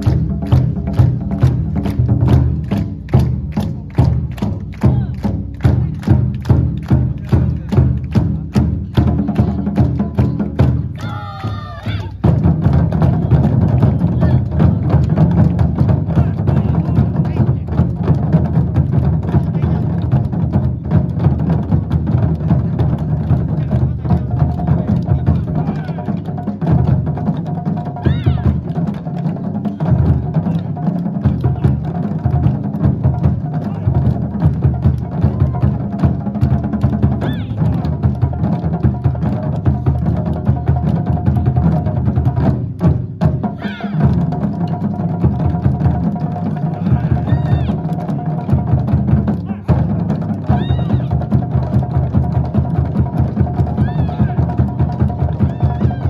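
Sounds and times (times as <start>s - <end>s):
large barrel drums striking: 0.0s - 56.0s.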